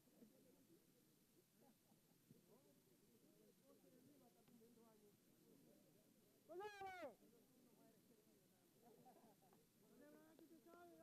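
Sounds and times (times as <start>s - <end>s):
faint background murmur: 0.0s - 11.0s.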